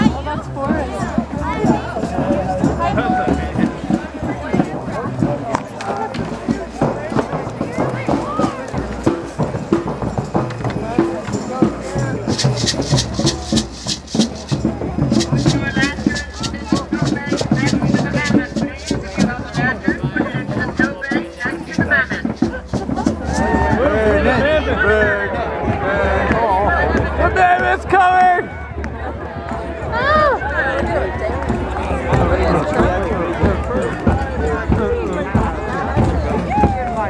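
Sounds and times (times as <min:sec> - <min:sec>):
quick sharp rhythmic beats: 0:00.0 - 0:24.8
crowd talking: 0:00.0 - 0:37.0.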